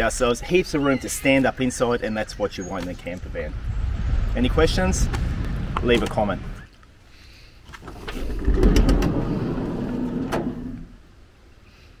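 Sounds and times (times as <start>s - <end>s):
sliding door rumbling along track: 7.8s - 11.0s.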